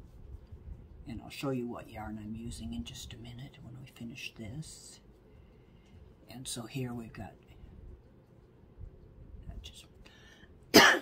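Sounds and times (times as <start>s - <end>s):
woman coughing: 10.7s - 11.0s.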